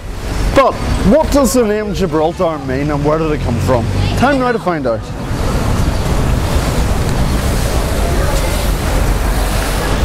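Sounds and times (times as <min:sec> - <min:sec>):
wind buffeting microphone: 0:05.0 - 0:10.0.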